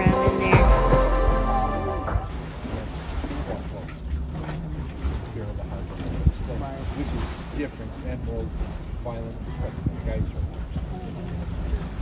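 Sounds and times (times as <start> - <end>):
low rumble: 0.0 - 7.0
water sloshing and splashing: 0.0 - 12.0.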